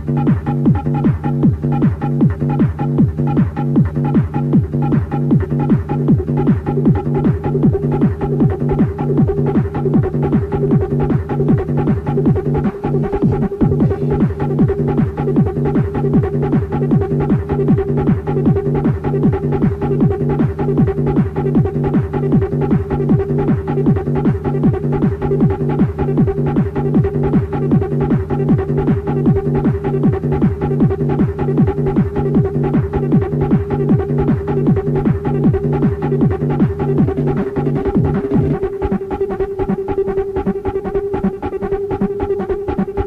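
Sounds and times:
electronic dance music: 0.0s - 43.0s.

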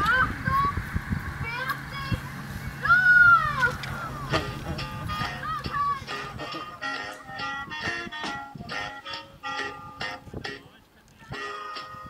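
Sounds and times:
high-pitched voice call: 1.5s - 8.2s.

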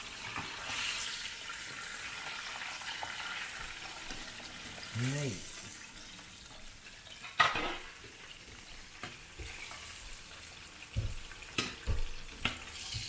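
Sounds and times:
food deep-frying in hot oil: 0.0s - 13.0s.

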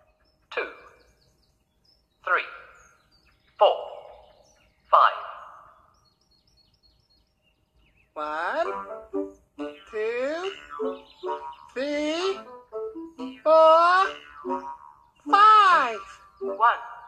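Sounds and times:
faint bird chirps: 0.0s - 12.5s, 13.1s - 17.0s
voice with music: 8.2s - 17.0s.

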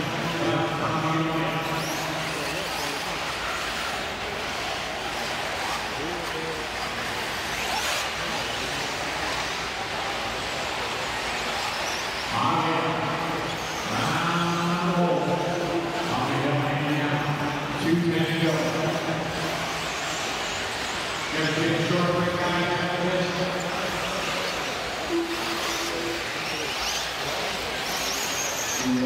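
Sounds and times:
electric rc cars racing: 0.0s - 29.0s.

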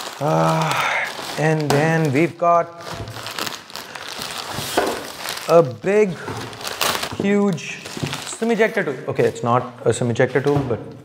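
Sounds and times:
plastic bag crinkling: 0.0s - 8.9s.

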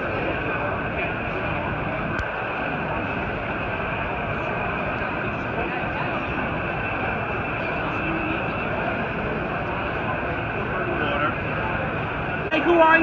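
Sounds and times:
crowd hubbub: 0.0s - 13.0s.

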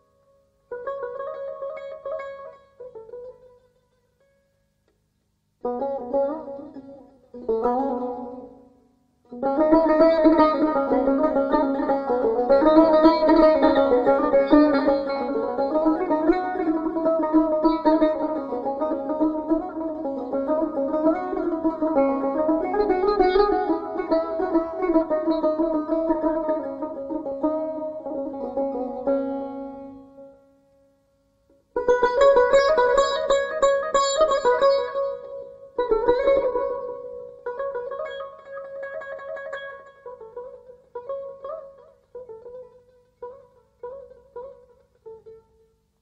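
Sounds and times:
plucked long-necked lute: 0.0s - 5.0s, 5.6s - 45.8s.

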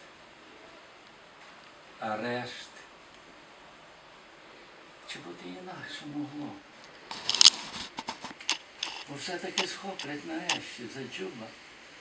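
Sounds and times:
handling rustle: 6.9s - 10.6s
sharp clicks and knocks: 7.1s - 10.6s.

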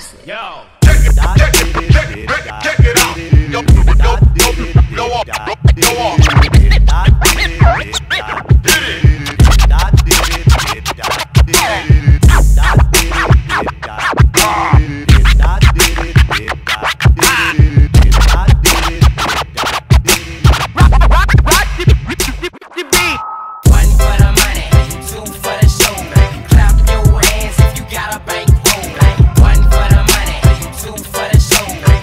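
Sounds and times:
deep bass: 0.8s - 10.8s, 11.4s - 16.5s, 17.1s - 19.2s, 20.6s - 23.1s, 23.7s - 32.0s
hip-hop drum beat: 0.8s - 32.0s
turntable scratching: 0.8s - 32.0s.

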